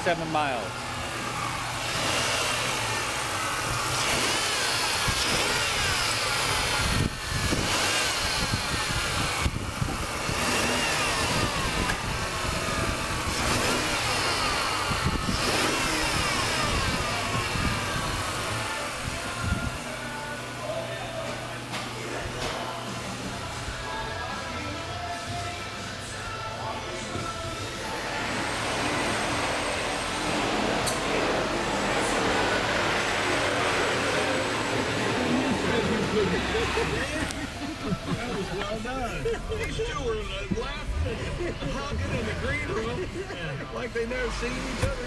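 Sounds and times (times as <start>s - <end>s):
car engine revving: 0.7s - 19.0s, 27.8s - 45.0s.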